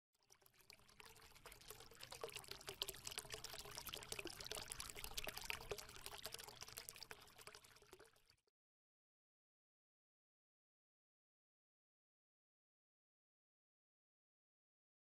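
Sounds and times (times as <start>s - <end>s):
dense fizzing crackle: 0.1s - 8.5s.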